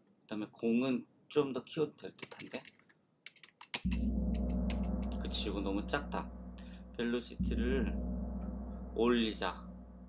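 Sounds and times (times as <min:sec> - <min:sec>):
computer keyboard clicks: 0:02.2 - 0:03.8
low ringing gong: 0:03.9 - 0:10.0.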